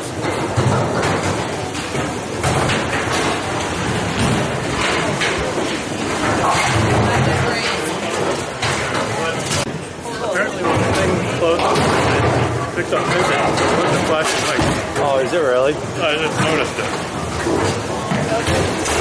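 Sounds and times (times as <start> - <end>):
bowling balls rumbling: 0.0 - 19.0
bowling pins being struck: 0.1 - 9.7
murmur of voices: 4.2 - 19.0.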